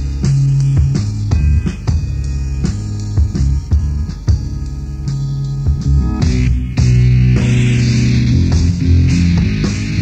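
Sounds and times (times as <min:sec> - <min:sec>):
bass guitar: 0:00.0 - 0:10.0
organ chords: 0:00.0 - 0:10.0.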